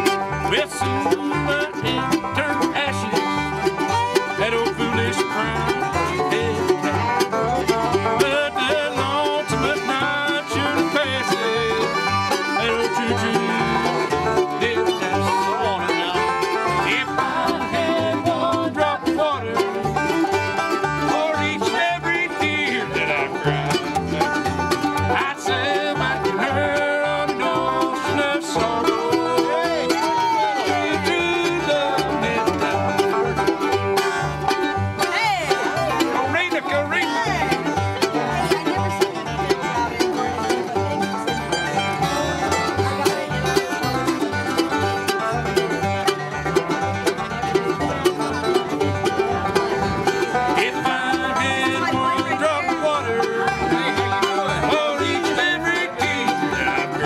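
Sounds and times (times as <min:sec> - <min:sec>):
bluegrass band playing: 0:00.0 - 0:57.0.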